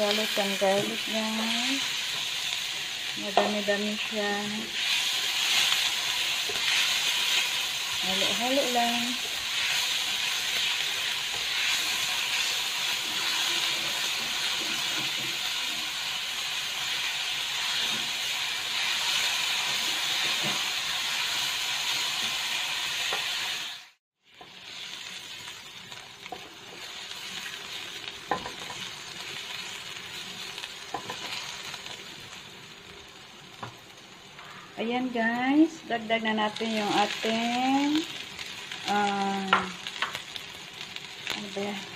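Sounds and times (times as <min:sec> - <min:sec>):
garlic sizzling in hot oil: 0:00.0 - 0:41.9
spatula stirring in wok: 0:04.6 - 0:23.6.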